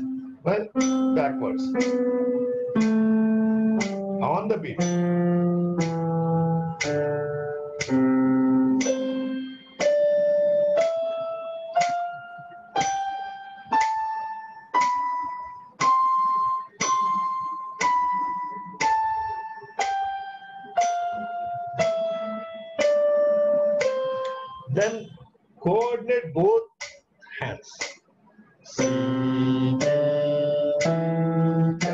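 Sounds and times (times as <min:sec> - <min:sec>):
electronic keyboard playing scales: 0:00.0 - 0:25.2, 0:28.7 - 0:31.9.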